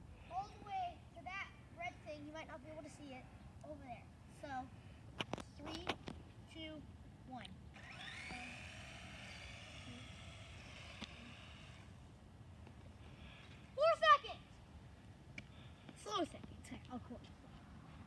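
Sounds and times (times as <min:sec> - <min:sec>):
toy car electric motor whining: 0:07.8 - 0:12.0.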